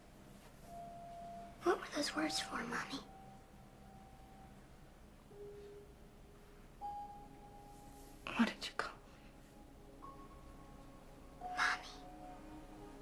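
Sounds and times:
soft sustained film music notes: 0:00.0 - 0:13.0.

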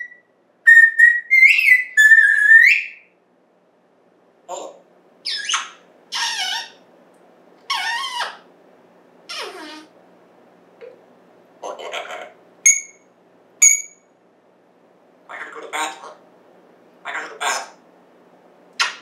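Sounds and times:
parrot whistling calls: 0:00.0 - 0:03.1, 0:05.2 - 0:06.8, 0:07.7 - 0:08.4, 0:09.3 - 0:09.9, 0:12.7 - 0:13.0, 0:13.6 - 0:14.0.

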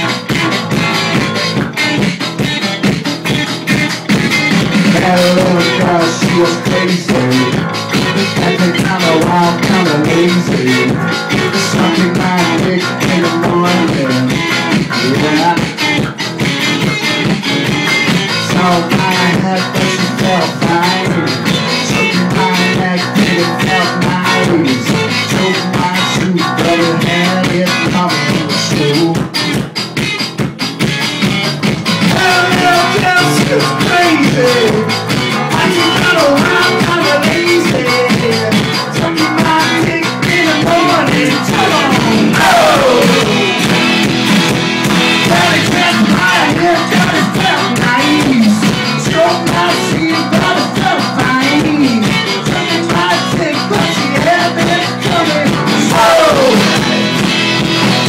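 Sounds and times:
bass guitar: 0:00.0 - 0:58.0
drums steady beat: 0:00.0 - 0:58.0
electric guitar: 0:00.0 - 0:58.0
live rock band playing: 0:00.0 - 0:58.0.

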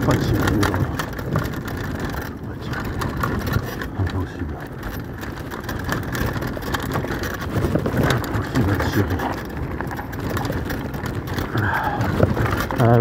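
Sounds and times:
bike rattling and knocking: 0:00.0 - 0:13.0
tyres rolling over dirt and stones: 0:00.0 - 0:13.0.

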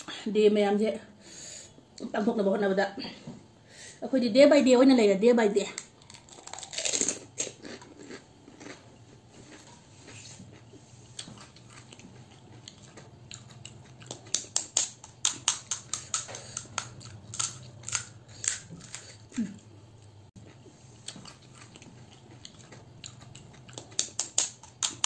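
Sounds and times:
crunching crisp shells: 0:05.8 - 0:09.7, 0:11.2 - 0:19.5, 0:21.0 - 0:25.0
quiet chewing: 0:05.8 - 0:25.0.

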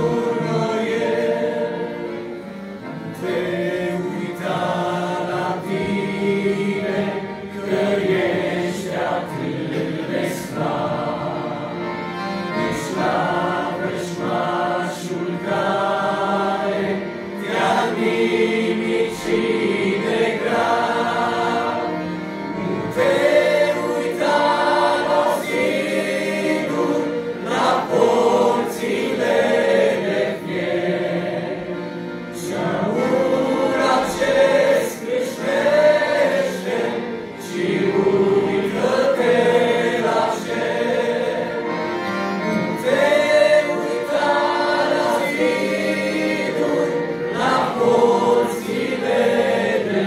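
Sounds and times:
choir singing a hymn: 0:00.0 - 0:50.0.

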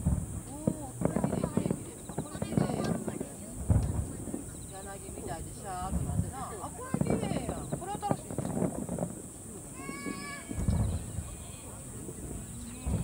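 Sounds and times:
distant fireworks: 0:00.0 - 0:13.0
spectators talking and calling out: 0:00.4 - 0:13.0.

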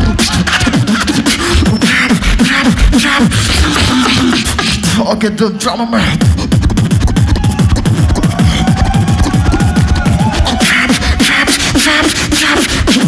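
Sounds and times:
hissing snare-like beatbox strokes: 0:00.0 - 0:05.0, 0:06.0 - 0:13.0
beatboxing bass kicks: 0:00.0 - 0:05.2, 0:05.8 - 0:13.0
beatboxer holding a steady tone: 0:00.0 - 0:13.0.

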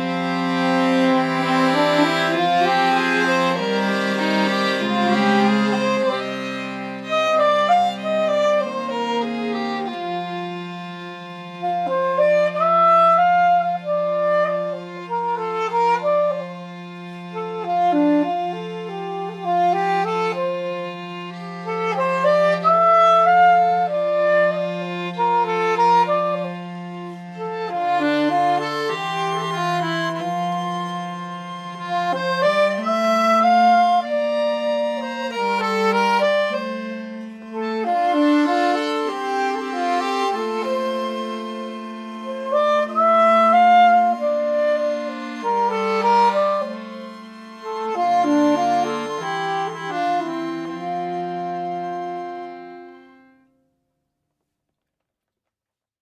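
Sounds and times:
fiddle: 0:00.0 - 0:53.3
hurdy-gurdy: 0:00.0 - 0:53.5
accordion: 0:00.0 - 0:53.6
saxophone melody: 0:00.0 - 0:53.6.

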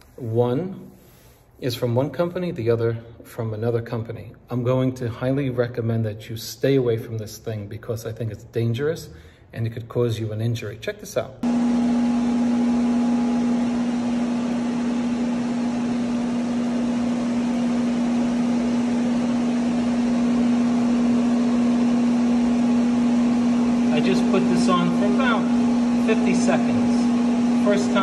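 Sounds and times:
heat gun fan hum: 0:11.4 - 0:28.0
man's voice: 0:23.8 - 0:28.0.

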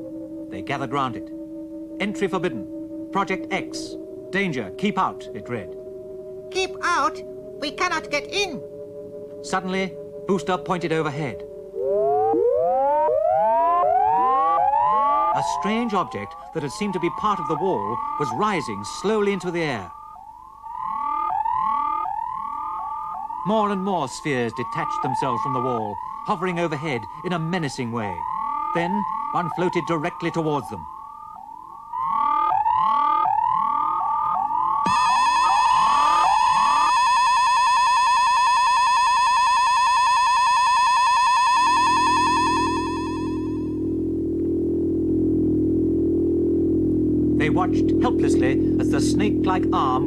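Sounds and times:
low droning hum: 0:00.0 - 0:12.4, 0:41.6 - 0:50.0
steady electronic tone: 0:00.0 - 0:50.0
upward-gliding electronic wails: 0:00.0 - 0:50.0.

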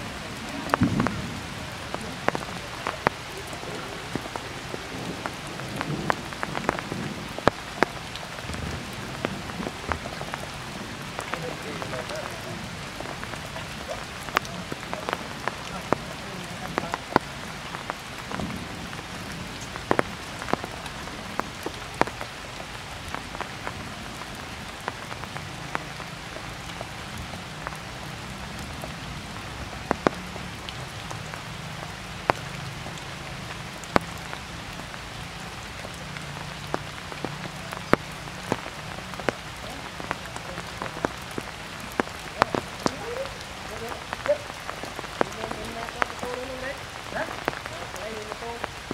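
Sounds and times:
heavy rain falling: 0:00.0 - 0:48.9
raindrops ticking close by: 0:00.0 - 0:48.9.

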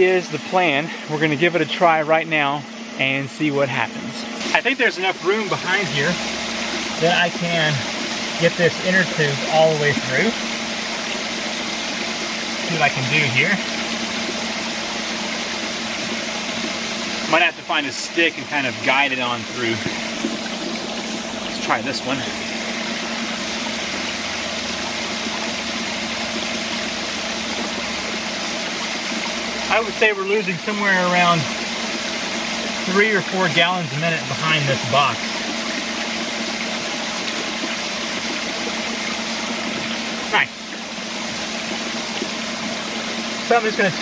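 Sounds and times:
steady low hum: 0:00.0 - 0:44.0
water rushing and splashing: 0:04.2 - 0:44.0.

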